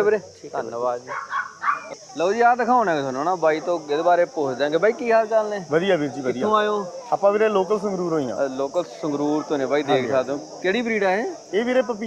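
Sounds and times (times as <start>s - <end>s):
puppy yipping: 1.1s - 2.0s
men's voices: 1.8s - 12.0s.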